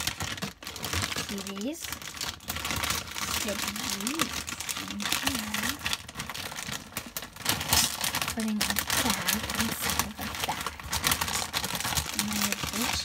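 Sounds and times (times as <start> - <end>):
plastic bag crinkling: 0.0 - 13.0.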